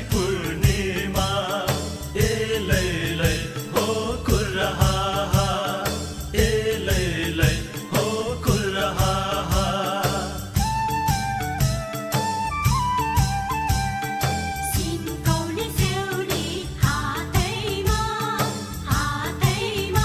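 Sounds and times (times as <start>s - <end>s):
group chanting a song: 0.0s - 10.6s
drum beating steady rhythm: 0.0s - 20.0s.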